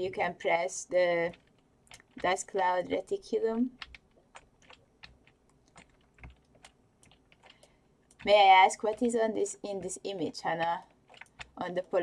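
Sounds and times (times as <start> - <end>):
computer keyboard key clicks: 3.8 - 8.3.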